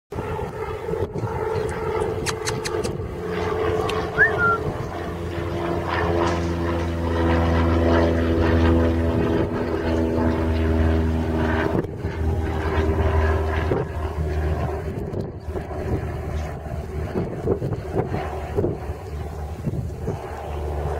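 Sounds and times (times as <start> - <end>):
motor drone: 0.2 - 20.9.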